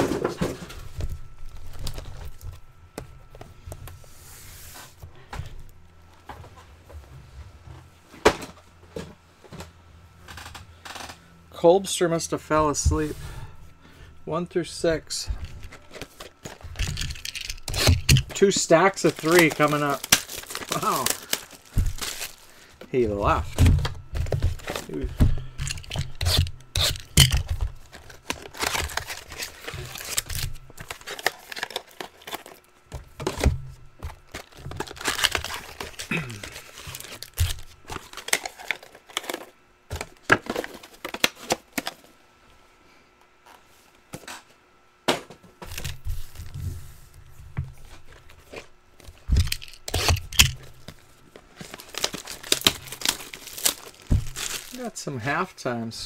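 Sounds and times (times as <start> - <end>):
card packs tearing and crinkling: 0.0 - 2.6, 14.9 - 42.1, 47.8 - 55.1.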